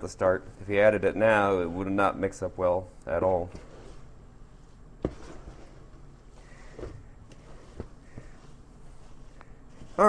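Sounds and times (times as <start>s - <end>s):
hand stirring damp granular mix: 0.0s - 10.0s.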